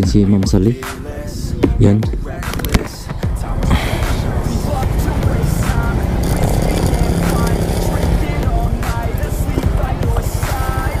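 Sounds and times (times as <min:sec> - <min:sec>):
scooter engine idling: 0:03.2 - 0:11.0.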